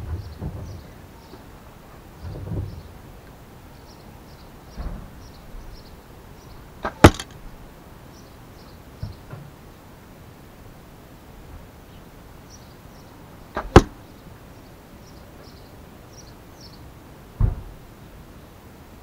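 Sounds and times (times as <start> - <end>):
arrow striking target: 6.8 - 7.4, 13.6 - 14.0.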